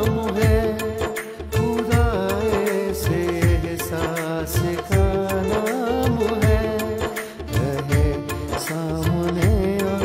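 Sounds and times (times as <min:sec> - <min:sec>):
drum beat: 0:00.0 - 0:10.0
man singing ornamented melody: 0:00.0 - 0:10.0.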